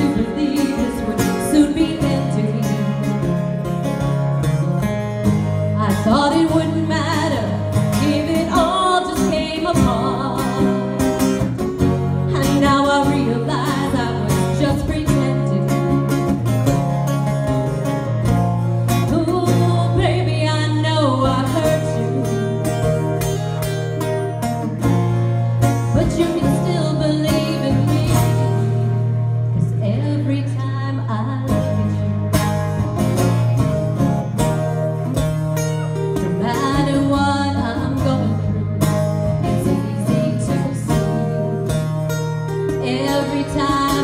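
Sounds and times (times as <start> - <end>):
woman singing a ballad: 0.0 - 3.6, 5.7 - 16.4, 19.0 - 23.2, 25.8 - 32.2, 36.2 - 44.0
clean electric guitar: 0.0 - 44.0.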